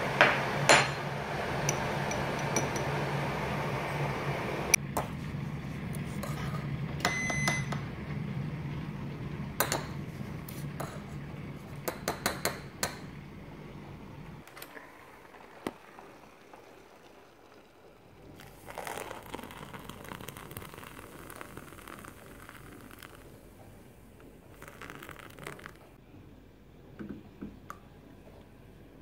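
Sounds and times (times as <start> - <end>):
spoon stirring in mug: 1.6 - 2.9, 6.0 - 6.7, 10.8 - 11.2, 18.7 - 23.3, 24.6 - 25.8
water pouring into mug: 14.7 - 26.0.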